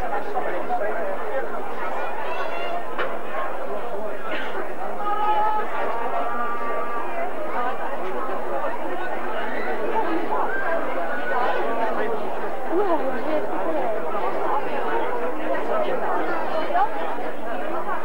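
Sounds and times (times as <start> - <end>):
spectators chattering: 0.0 - 18.0.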